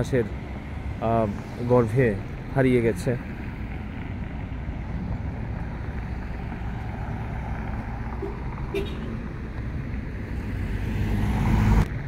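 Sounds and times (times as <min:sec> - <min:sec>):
distant road traffic: 0:00.0 - 0:12.0.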